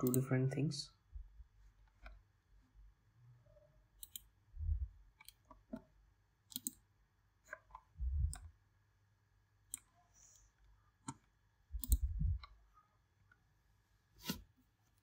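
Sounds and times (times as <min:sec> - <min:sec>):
computer mouse clicking: 0:00.0 - 0:00.3, 0:04.0 - 0:04.4, 0:05.1 - 0:08.6, 0:09.6 - 0:12.6
dull low thumps: 0:04.6 - 0:05.0, 0:08.0 - 0:08.4, 0:11.8 - 0:12.5.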